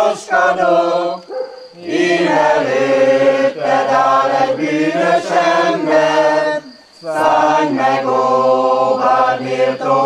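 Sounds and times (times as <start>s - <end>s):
group of people singing: 0.0s - 10.0s.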